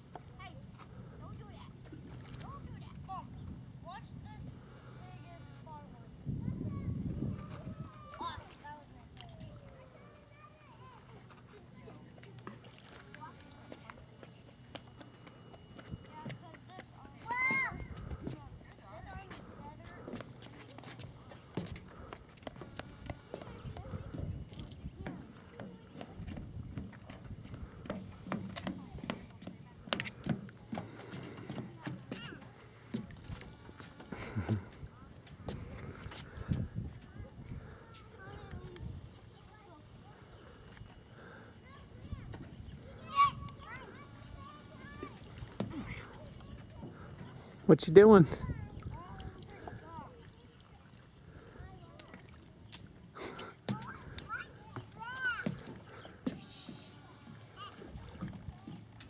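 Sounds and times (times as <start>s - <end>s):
faint distant voices: 0.0s - 59.0s
footsteps on wooden boards: 25.0s - 37.1s, 53.3s - 58.9s.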